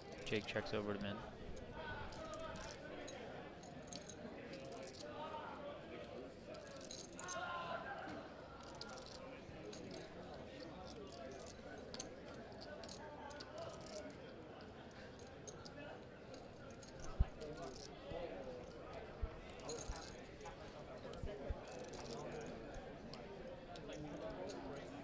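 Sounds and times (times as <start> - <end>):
faint murmur of voices: 0.0 - 25.0
poker chips clicking: 2.1 - 3.2, 3.8 - 5.1, 6.6 - 7.4, 8.6 - 14.2, 16.4 - 17.9, 21.7 - 23.2.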